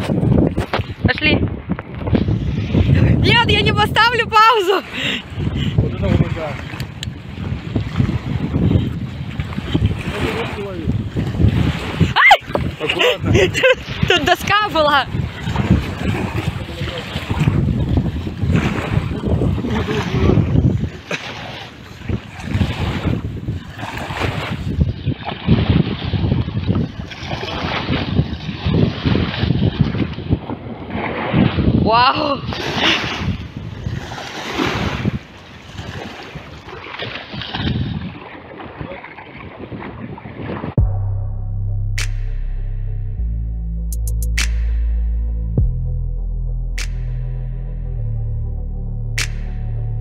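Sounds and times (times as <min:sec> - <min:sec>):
water washing at shoreline: 0:00.0 - 0:40.8
wind buffeting microphone: 0:00.0 - 0:41.3.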